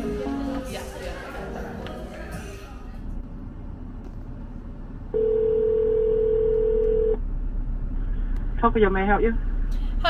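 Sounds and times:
telephone ringback tone: 5.2s - 7.2s.

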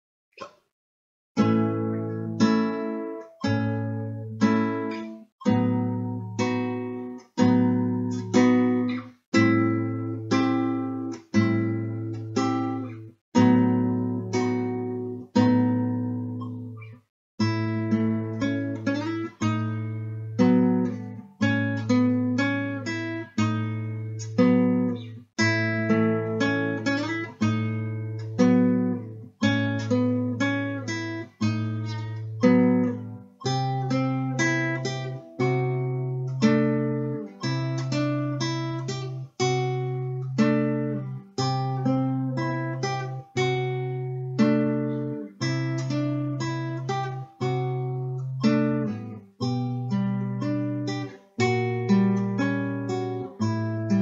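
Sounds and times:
fingerstyle classical guitar: 1.4s - 54.0s.

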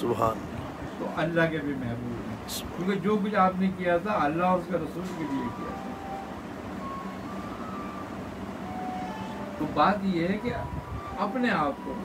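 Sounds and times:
faint background noise: 0.0s - 12.0s
low mechanical hum: 0.0s - 12.0s
brief faint high tones: 5.2s - 9.7s.

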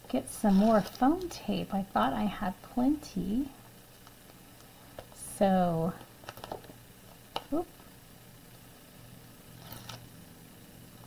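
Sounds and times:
low steady hum: 0.0s - 11.0s
foam tape rustling: 0.4s - 1.3s
paper crinkle: 0.5s - 1.3s, 9.6s - 10.1s.

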